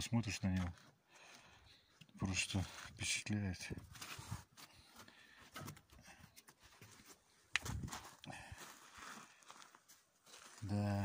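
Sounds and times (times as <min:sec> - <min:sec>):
footsteps on gravel: 0:02.2 - 0:05.2, 0:06.7 - 0:11.0.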